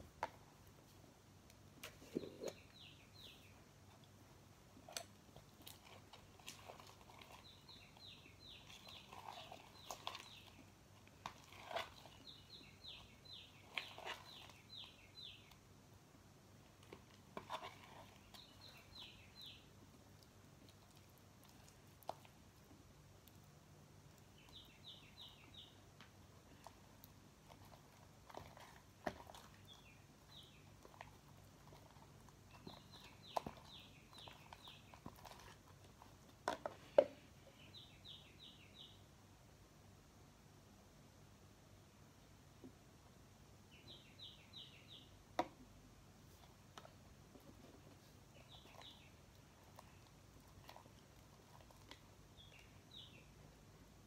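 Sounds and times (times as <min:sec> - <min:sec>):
bird chirping: 0:01.8 - 0:03.6, 0:05.6 - 0:15.6, 0:17.4 - 0:19.7, 0:24.2 - 0:25.8, 0:28.3 - 0:39.1, 0:43.7 - 0:45.2, 0:47.4 - 0:53.5.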